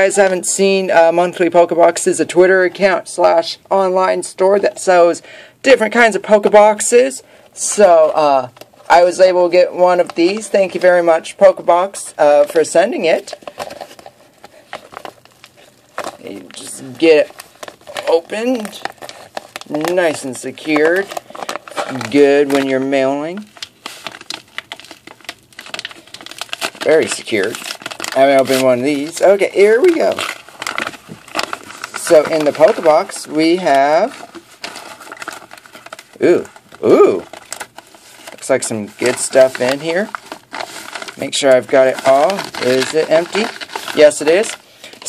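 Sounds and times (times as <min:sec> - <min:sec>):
paper envelope crinkling: 0:06.6 - 0:45.0.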